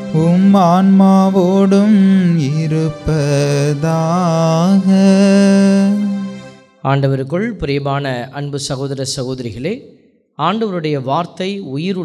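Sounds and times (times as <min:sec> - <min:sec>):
man chanting a prayer: 0:00.1 - 0:06.2.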